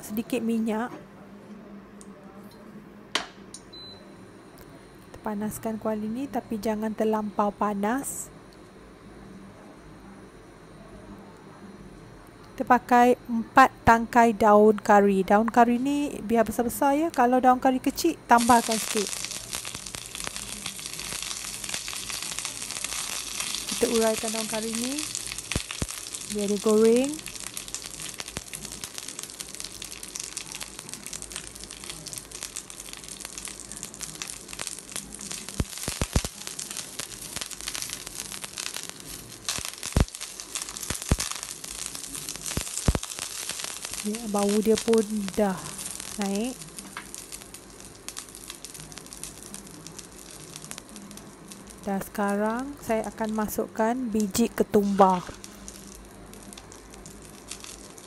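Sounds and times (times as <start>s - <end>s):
leaves frying in hot oil: 5.2s - 8.3s, 12.6s - 58.0s.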